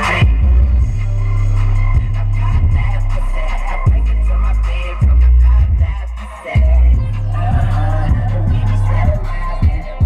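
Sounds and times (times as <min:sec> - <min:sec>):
deep bass notes from subwoofers: 0:00.0 - 0:10.0.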